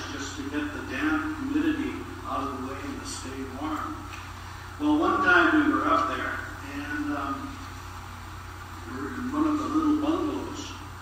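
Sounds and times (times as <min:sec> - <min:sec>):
man speaking: 0:00.0 - 0:04.1, 0:04.8 - 0:07.6, 0:08.8 - 0:10.9
steady low hum: 0:00.0 - 0:11.0.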